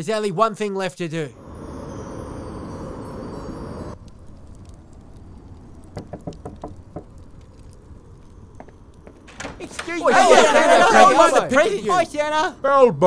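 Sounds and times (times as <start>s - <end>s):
low rumble: 1.3s - 9.8s
light knocks: 5.8s - 7.5s.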